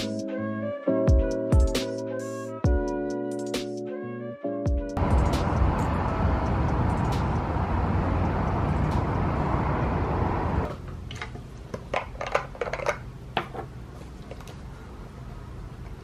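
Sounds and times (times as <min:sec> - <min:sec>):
distant expressway traffic rumble: 0:05.0 - 0:10.7
plastic jars clicking and tapping: 0:11.7 - 0:13.5.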